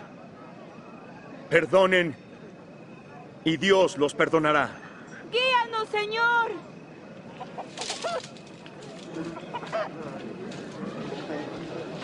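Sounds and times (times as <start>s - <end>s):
outdoor ambience: 0.0s - 12.0s
chickens clucking: 7.2s - 11.4s.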